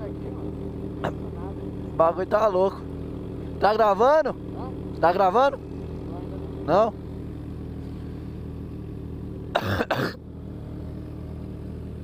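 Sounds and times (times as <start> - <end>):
motorcycle engine idling: 0.0 - 12.0
person coughing hard: 9.5 - 10.2.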